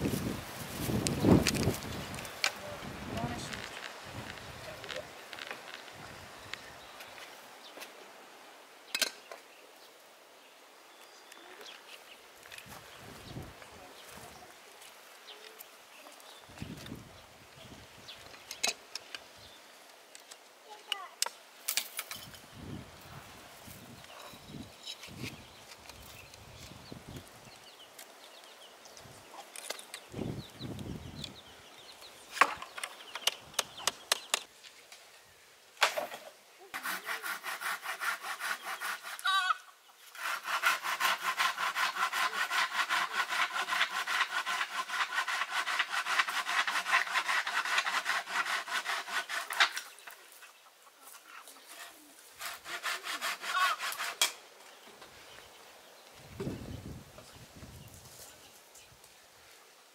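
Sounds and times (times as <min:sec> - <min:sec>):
hand saw sawing wood: 0:36.7 - 0:39.4, 0:40.0 - 0:50.1, 0:51.6 - 0:54.4.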